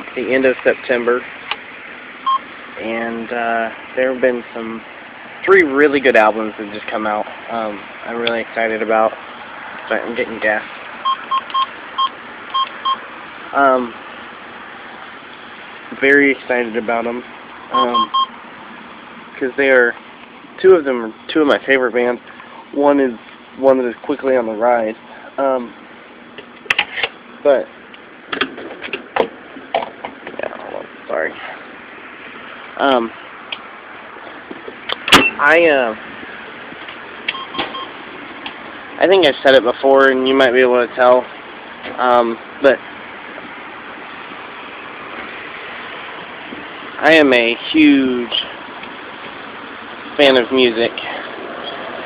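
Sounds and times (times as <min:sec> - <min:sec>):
steady background noise: 0:00.0 - 0:52.0
keypad beeps: 0:11.0 - 0:13.0, 0:17.8 - 0:18.3, 0:37.3 - 0:37.9.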